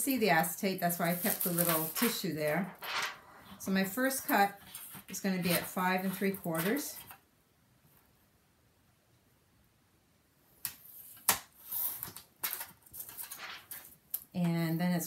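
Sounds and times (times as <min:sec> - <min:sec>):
plastic sheet rustling and scraping: 0:01.0 - 0:07.0.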